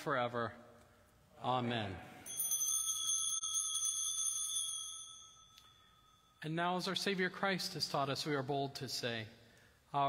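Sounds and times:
small bell ringing: 0:02.2 - 0:06.5.

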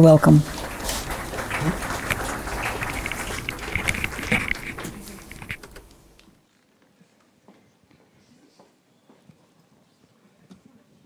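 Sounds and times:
faint footsteps: 0:00.2 - 0:06.3.

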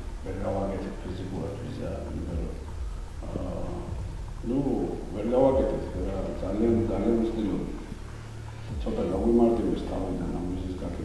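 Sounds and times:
low hum: 0:00.0 - 0:11.0
man talking muffled: 0:00.3 - 0:07.8, 0:08.7 - 0:11.0.

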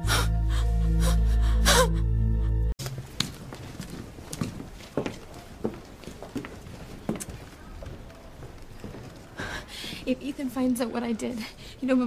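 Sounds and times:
woman sobbing: 0:00.0 - 0:02.7.

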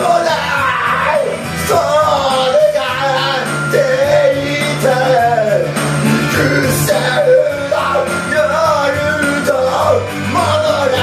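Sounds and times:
backing track with bass line: 0:00.0 - 0:11.0
man singing karaoke: 0:00.0 - 0:11.0.

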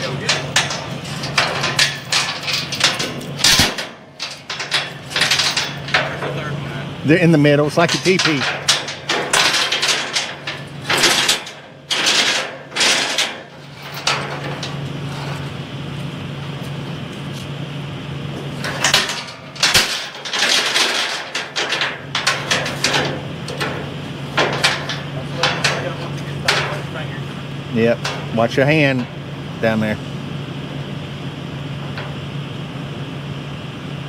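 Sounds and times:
metallic clanks and knocks: 0:00.0 - 0:15.6, 0:18.4 - 0:29.3
excavator diesel engine idling: 0:00.0 - 0:34.0.

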